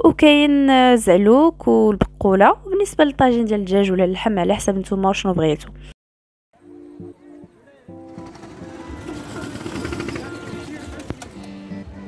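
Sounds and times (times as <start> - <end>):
background music: 6.6 - 12.0
go-kart engines buzzing: 7.9 - 11.6.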